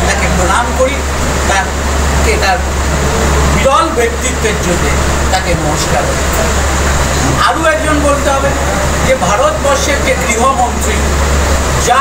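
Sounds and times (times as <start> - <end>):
man speaking: 0.0 - 2.8, 3.5 - 11.2.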